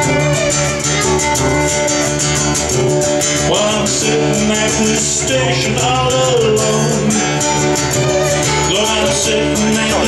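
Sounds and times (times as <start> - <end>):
bowed fiddle melody: 0.0 - 5.5, 6.8 - 10.0
strummed acoustic guitar: 0.0 - 10.0.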